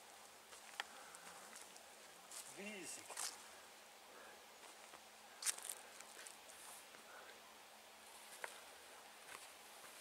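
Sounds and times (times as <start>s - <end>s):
forest ambience: 0.0s - 10.0s
wordless hum of a voice: 2.4s - 3.3s.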